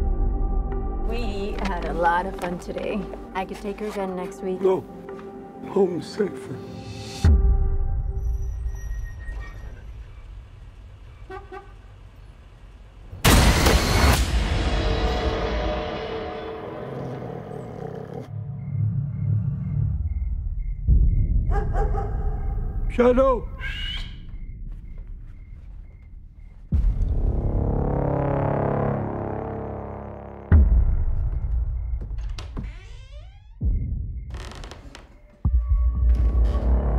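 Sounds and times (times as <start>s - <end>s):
car horn toots: 11.3s - 11.8s.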